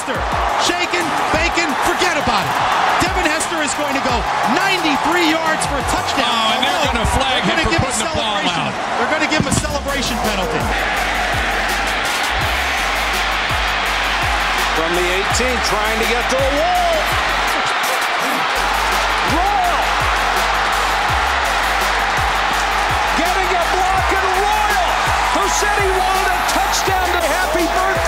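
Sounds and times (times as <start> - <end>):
background music with a beat: 0.0 - 7.2, 9.5 - 28.0
crowd noise: 0.0 - 28.0
excited shouting voices: 0.0 - 28.0
deep bass: 9.5 - 17.6, 18.5 - 28.0.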